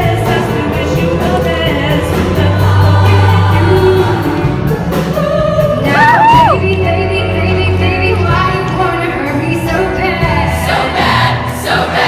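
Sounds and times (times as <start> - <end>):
women's choir singing pop: 0.0 - 12.0.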